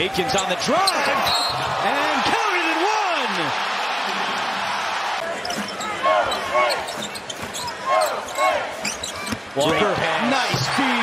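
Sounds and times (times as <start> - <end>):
arena crowd noise: 0.0 - 11.0
shoes squeaking on court: 5.4 - 9.5.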